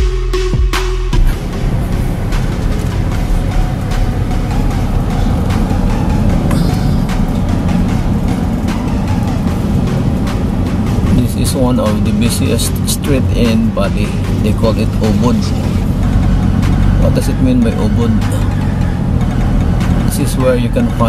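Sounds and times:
background music: 0.0 - 21.0
car engine and road rumble: 1.2 - 21.0.

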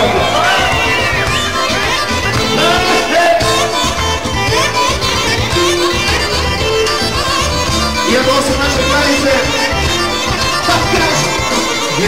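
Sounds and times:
folk dance music over a pa: 0.0 - 12.0.

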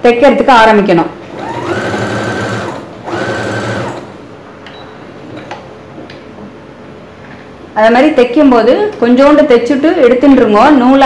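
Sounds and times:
sewing machine stitching: 1.3 - 4.2.

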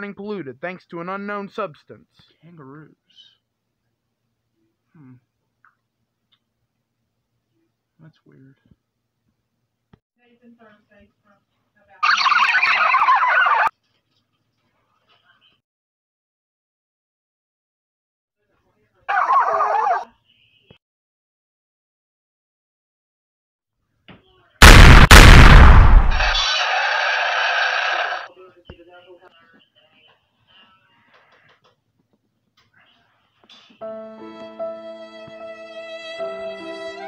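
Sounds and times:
harsh toy monster cry: 12.0 - 13.7, 19.1 - 20.1, 26.2 - 28.3
rapidly wavering animal call: 12.0 - 13.7.

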